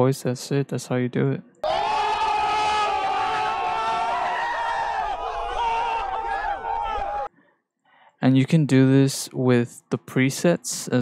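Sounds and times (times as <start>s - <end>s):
crowd screaming and yelling: 1.6s - 7.3s
held shout: 1.6s - 7.3s.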